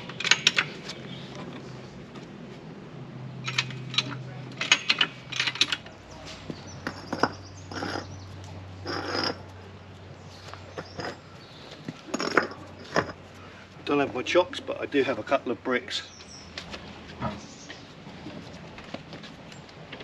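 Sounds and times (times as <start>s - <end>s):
knocks clicks and scrapes of objects: 3.4s - 8.1s, 10.5s - 13.3s.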